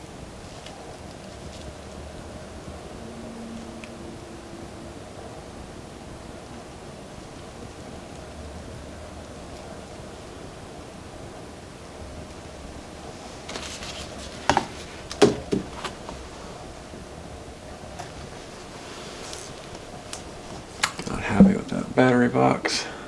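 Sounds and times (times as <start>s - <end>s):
room hiss: 0.0s - 23.0s.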